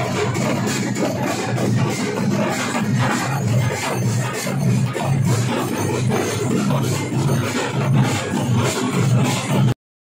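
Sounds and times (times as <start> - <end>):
barrel drums beaten with sticks: 0.0 - 9.8.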